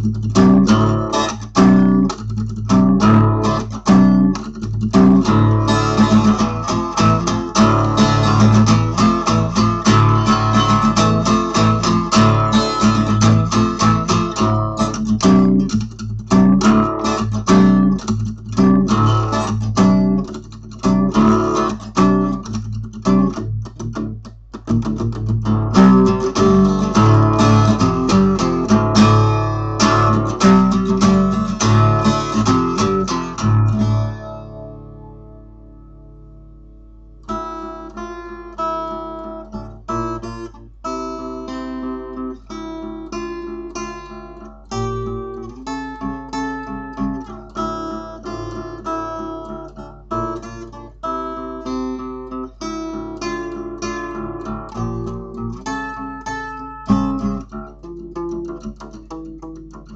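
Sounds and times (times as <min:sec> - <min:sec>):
acoustic guitar strummed riffs: 0:00.0 - 0:59.9.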